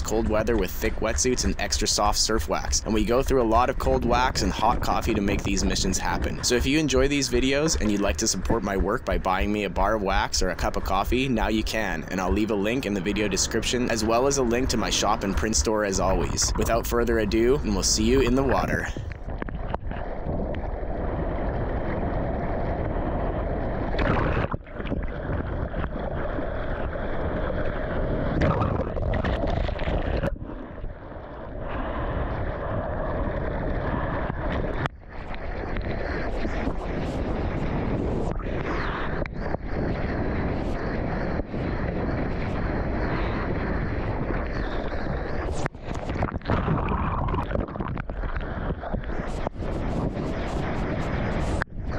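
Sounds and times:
wind noise on microphone: 0.0s - 51.9s.

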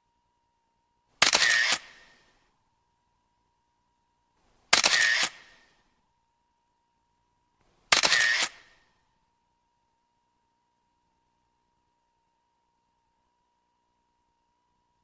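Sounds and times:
camera shutter bursts: 1.2s - 2.3s, 4.7s - 5.8s, 7.9s - 8.8s.

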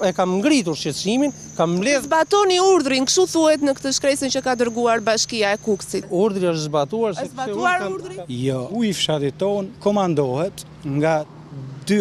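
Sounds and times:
insects chirring: 0.0s - 9.7s
people talking over each other: 0.0s - 11.3s.

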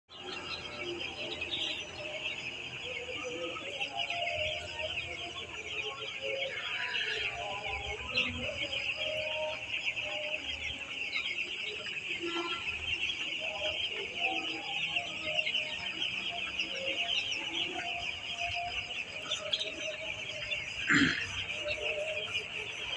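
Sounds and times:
chicks peeping: 0.1s - 22.9s.

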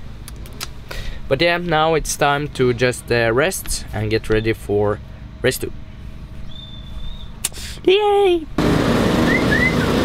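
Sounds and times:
man shouting yay: 7.9s - 8.5s.

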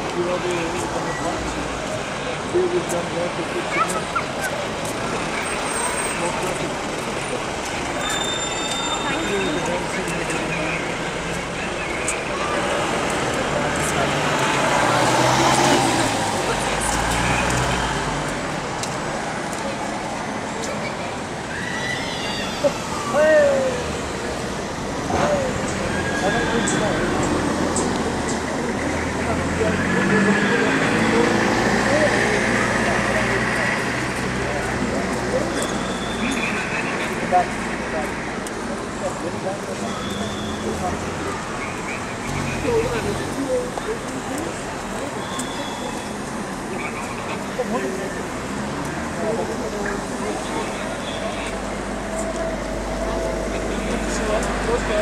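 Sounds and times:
people talking in street: 0.0s - 55.0s
vehicles passing: 0.0s - 55.0s.

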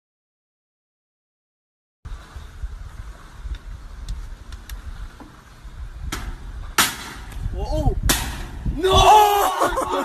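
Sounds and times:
sharp crack: 6.1s - 8.6s
loud sharp bang: 8.0s - 8.6s.

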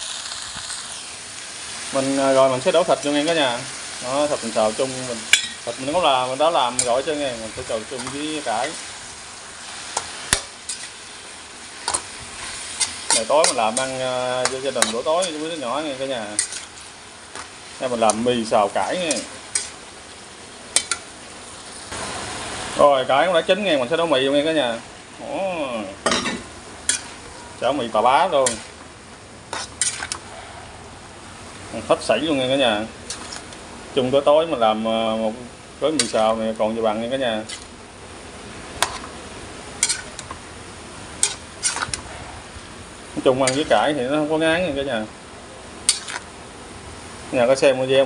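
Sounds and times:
steady hiss: 0.0s - 48.0s
wok sizzling: 0.0s - 48.0s
utensil scraping metal pan: 4.5s - 8.9s, 9.9s - 11.0s, 11.8s - 19.8s, 26.1s - 28.8s, 29.5s - 30.3s, 35.9s - 36.4s, 39.8s - 40.4s, 41.2s - 42.1s, 43.3s - 44.0s, 45.9s - 46.3s.

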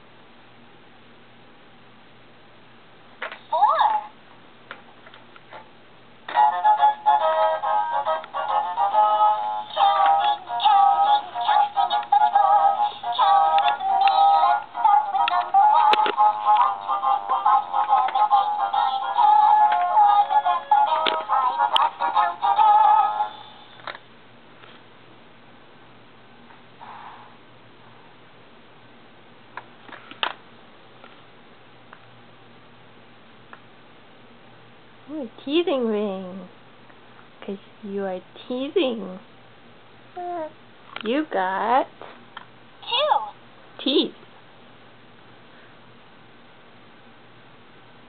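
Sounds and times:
toy playing sung children's tune: 6.3s - 23.7s.

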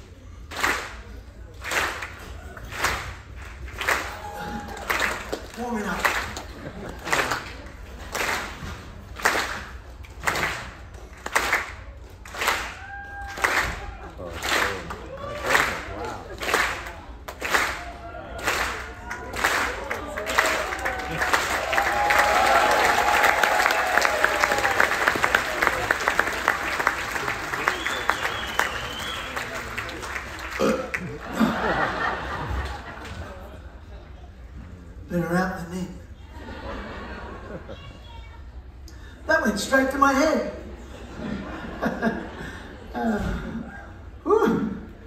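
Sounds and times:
audience applause: 0.0s - 33.6s
audience slow clapping: 0.0s - 33.6s
audience cheering and whooping: 4.0s - 5.2s, 12.6s - 16.3s, 17.6s - 30.0s.

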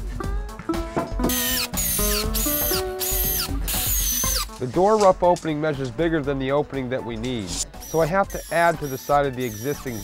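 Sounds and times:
background music: 0.0s - 10.0s
power drill driving screws: 1.3s - 4.6s.

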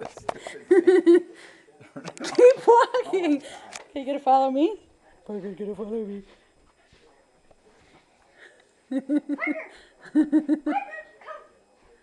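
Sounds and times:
woman laughing: 8.9s - 11.0s.

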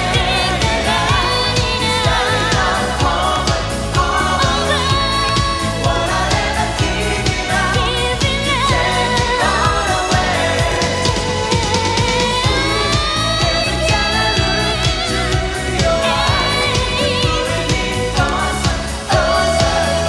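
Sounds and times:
full band with driving beat: 0.0s - 20.0s
woman singing pop song: 0.0s - 20.0s.

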